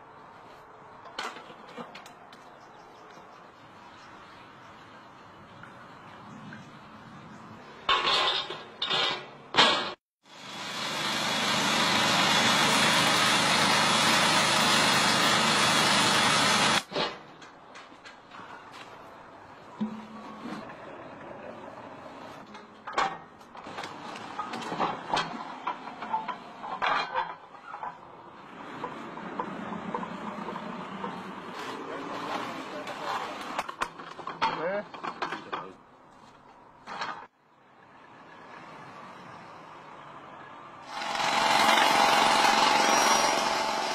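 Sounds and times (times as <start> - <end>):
cutting machine grinding asphalt: 10.4 - 16.9, 40.9 - 43.9.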